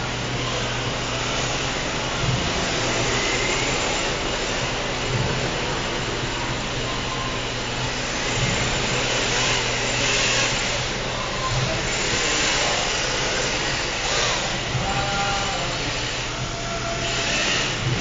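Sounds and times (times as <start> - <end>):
electric motors whining: 0.0 - 18.0.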